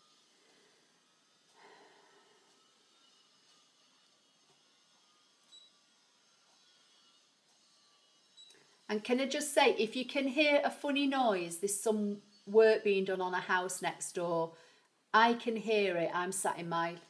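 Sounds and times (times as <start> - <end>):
woman speaking: 8.9 - 14.5, 15.2 - 17.0.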